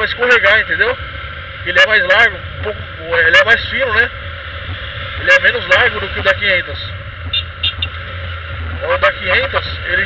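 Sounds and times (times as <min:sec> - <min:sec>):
motorcycle engine running: 0:00.0 - 0:10.0
road noise: 0:00.0 - 0:10.0.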